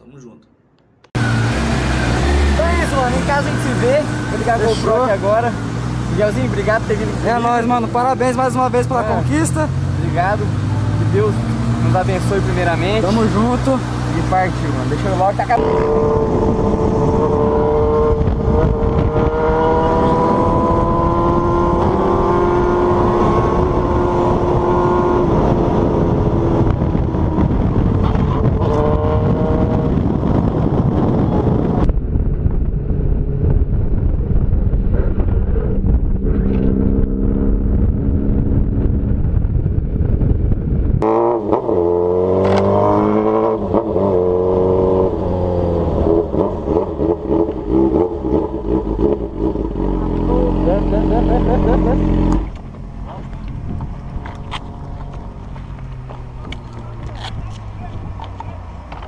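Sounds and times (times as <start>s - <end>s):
heavy wind noise: 1.1s - 59.0s
motorcycle engine running: 2.4s - 59.0s.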